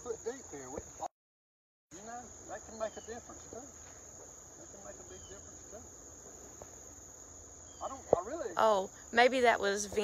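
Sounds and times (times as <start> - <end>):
insects trilling: 0.0 - 1.1, 1.9 - 10.0.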